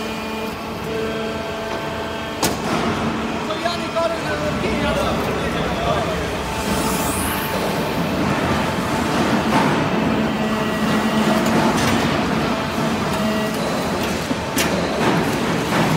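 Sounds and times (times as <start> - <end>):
hydraulic pump humming: 0.0 - 15.9
low machine tone: 0.0 - 15.9.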